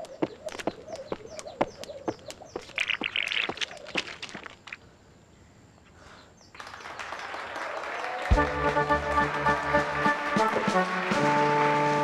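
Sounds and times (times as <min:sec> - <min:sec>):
audience applause: 0:06.6 - 0:12.0
brass band music: 0:08.3 - 0:12.0.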